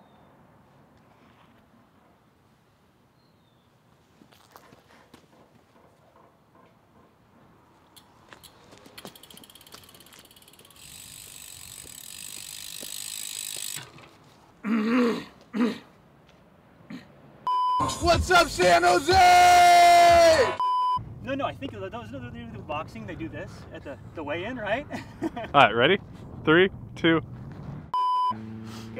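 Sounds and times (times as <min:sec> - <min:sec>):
bicycle freewheel ratcheting: 0:08.0 - 0:14.1.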